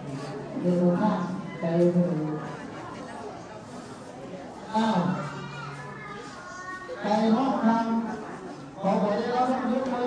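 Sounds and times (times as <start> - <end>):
crowd chatter: 0.0 - 10.0
children's voices: 4.8 - 7.6.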